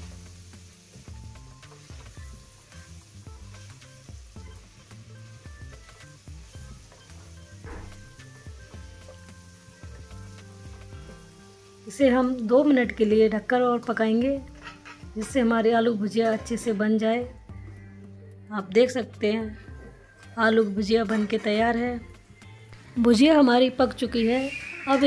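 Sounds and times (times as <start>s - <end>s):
potatoes sizzling in oil: 0.0s - 18.0s, 20.3s - 25.0s
soft background music: 0.0s - 25.0s
wooden spatula scraping: 14.4s - 15.4s.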